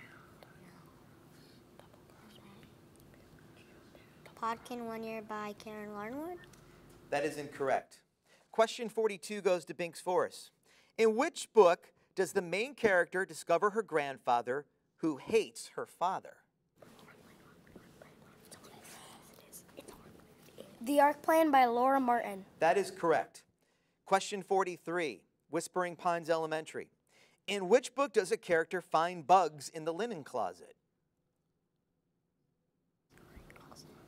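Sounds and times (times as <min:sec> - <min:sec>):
low room hiss: 0:00.0 - 0:30.7, 0:33.1 - 0:34.0.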